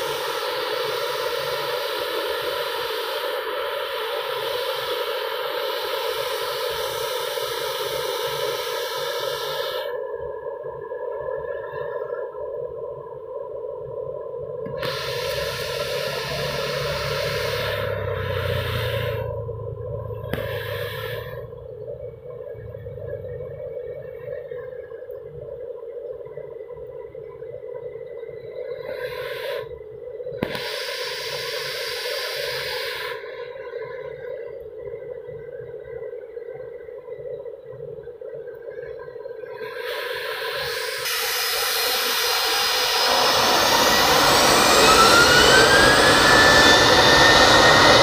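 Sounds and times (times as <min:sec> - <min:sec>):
distant jet engines whining: 0:00.0 - 0:48.0
low rumble: 0:15.6 - 0:24.7.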